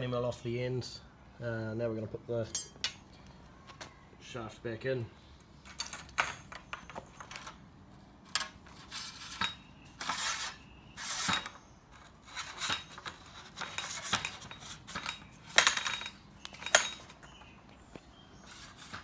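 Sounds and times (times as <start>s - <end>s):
metal scraping and clinking: 5.6s - 7.6s, 8.2s - 17.6s.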